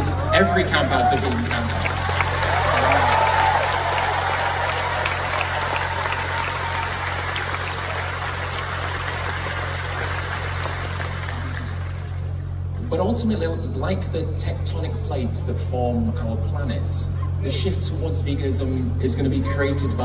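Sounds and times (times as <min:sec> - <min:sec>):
crowd cheering: 0:00.0 - 0:12.4
crowd applauding: 0:00.0 - 0:12.5
steady low hum: 0:00.0 - 0:20.0.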